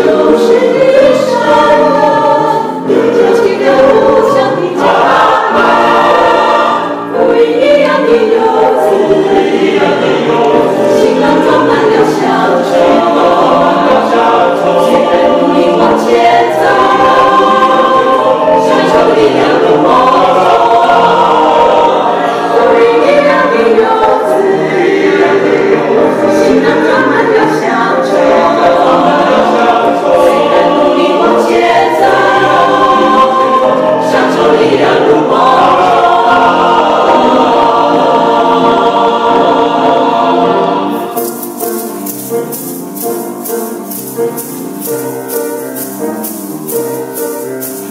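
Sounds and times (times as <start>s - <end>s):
mixed choir singing: 0.0s - 47.9s.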